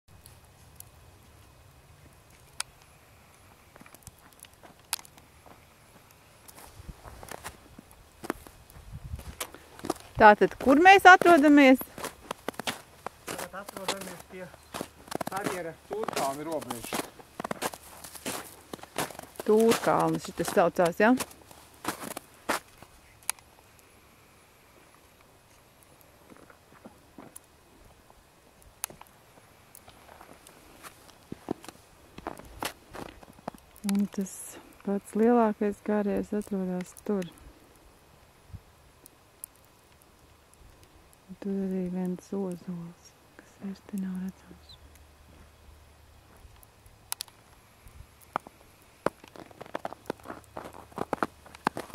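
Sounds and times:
footsteps on snow: 5.4s - 23.0s, 29.9s - 33.6s, 48.4s - 51.9s
person speaking: 10.2s - 11.9s, 13.3s - 14.6s, 19.4s - 21.2s, 33.8s - 37.4s.

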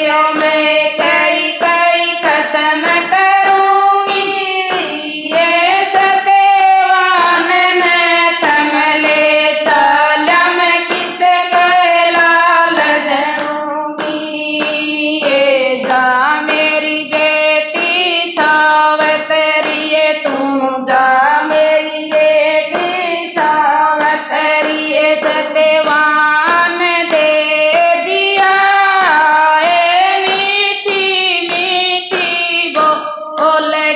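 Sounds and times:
rhythmic hand claps: 0.0s - 33.9s
women singing devotional song: 0.0s - 33.9s.

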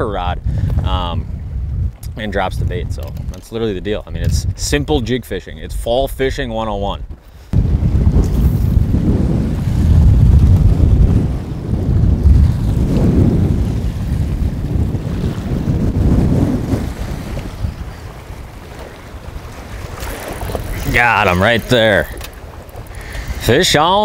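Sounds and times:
choppy waves around boat: 0.0s - 24.0s
wind buffeting microphone: 0.0s - 24.0s.

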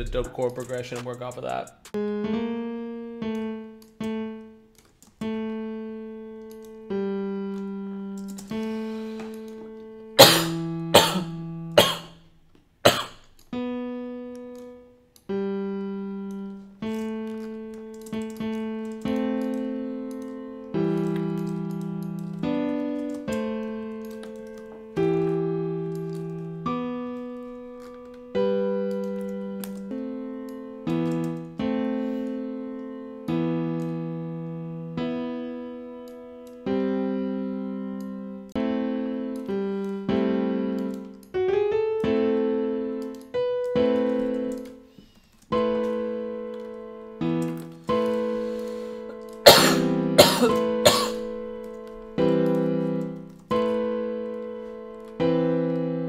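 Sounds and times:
software piano notes and chords: 0.0s - 56.0s.

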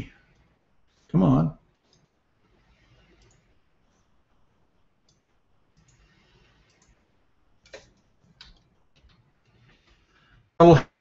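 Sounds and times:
computer mouse clicks: 2.8s - 4.1s, 5.0s - 10.1s.

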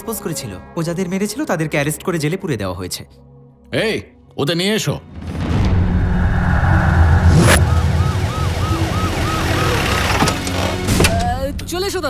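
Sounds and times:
low rumble: 5.1s - 9.4s
emergency siren whooping: 6.7s - 10.6s.

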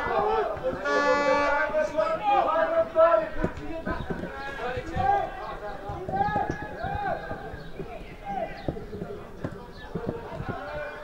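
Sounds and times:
men shouting and calling: 0.0s - 11.0s.

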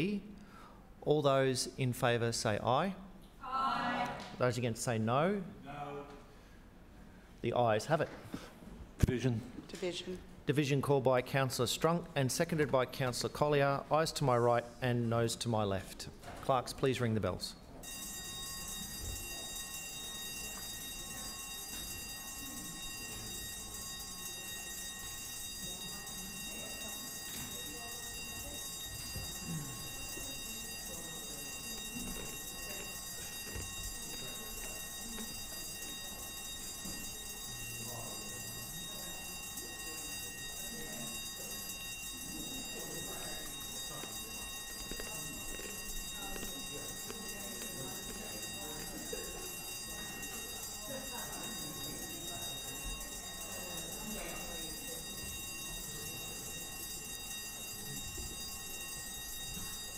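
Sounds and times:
murmur of voices: 3.4s - 5.0s, 18.0s - 59.9s
bells ringing: 17.8s - 59.9s.

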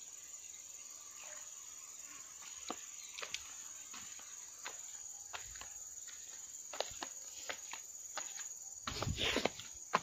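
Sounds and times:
insect drone: 0.0s - 10.0s.

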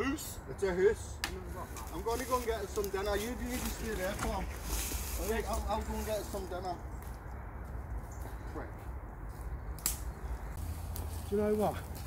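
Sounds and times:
footsteps on leaves and sticks: 1.2s - 12.0s
twig snapping: 9.7s - 10.2s.

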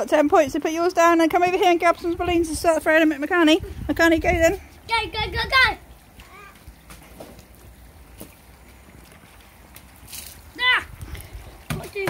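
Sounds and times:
wind rumble on microphone: 1.8s - 5.5s, 10.8s - 11.7s.

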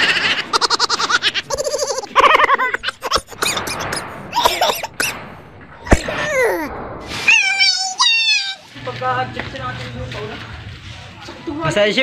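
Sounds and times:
sharp loud thud: 3.4s - 7.3s.

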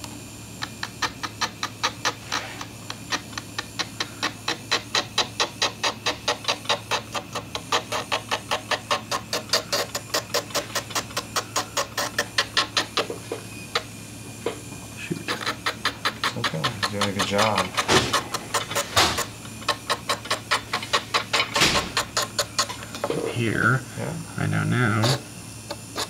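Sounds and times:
electric nail file motor humming: 0.0s - 26.0s
rasping scrape on nail: 0.7s - 13.2s, 15.2s - 22.9s, 24.9s - 26.0s.

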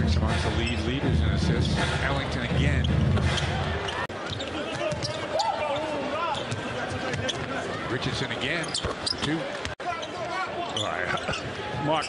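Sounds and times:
crowd noise: 0.0s - 12.0s
basketball bouncing on court: 4.2s - 5.2s.

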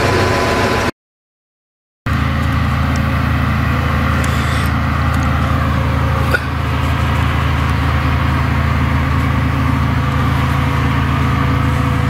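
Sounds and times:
low engine drone: 0.0s - 0.9s, 2.1s - 12.0s.

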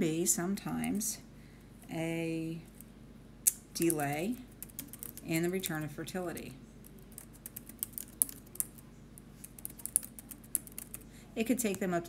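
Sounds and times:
keyboard typing: 3.8s - 5.3s, 6.9s - 8.8s, 9.4s - 11.0s.

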